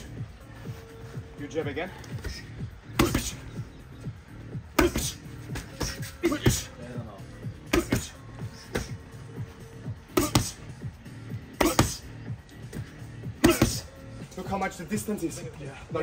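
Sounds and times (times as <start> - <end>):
background music: 0.0 - 16.0
boxing gloves smacking: 2.0 - 3.4, 10.1 - 10.7, 11.6 - 12.0, 12.7 - 13.9.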